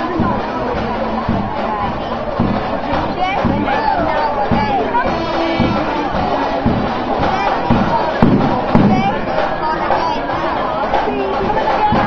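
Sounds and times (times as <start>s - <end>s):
band drum beats: 0.0s - 12.0s
crowd chatter: 0.0s - 12.0s.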